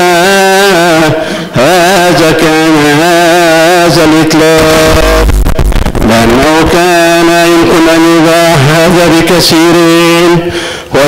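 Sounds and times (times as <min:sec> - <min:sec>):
man chanting melodic recitation: 0:00.0 - 0:05.3, 0:06.0 - 0:11.0.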